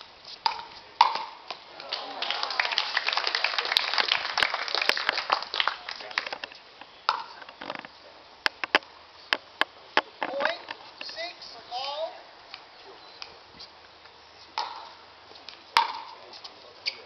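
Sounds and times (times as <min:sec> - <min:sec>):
voices calling out: 0:01.7 - 0:04.2.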